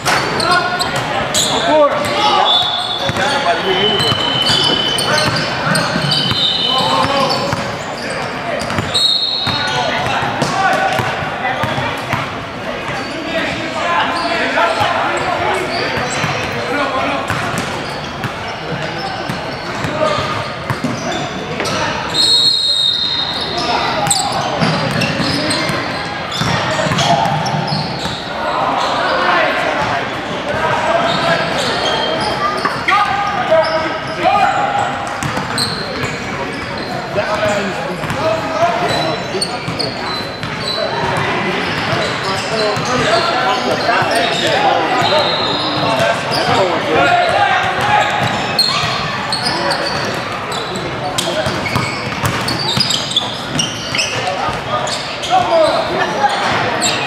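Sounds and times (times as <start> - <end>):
voices and shouts in gym: 0.0 - 57.0.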